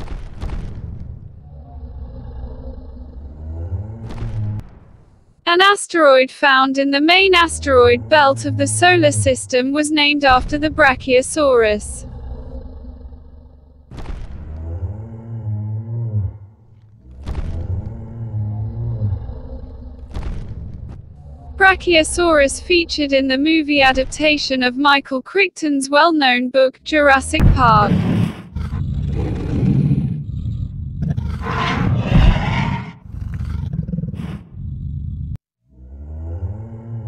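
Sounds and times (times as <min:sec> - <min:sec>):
dinosaur roar: 0:01.4 - 0:04.6, 0:07.2 - 0:20.4, 0:21.1 - 0:23.4, 0:27.0 - 0:37.0
dinosaur bellowing call: 0:07.1 - 0:09.8, 0:28.6 - 0:34.4, 0:35.7 - 0:37.0.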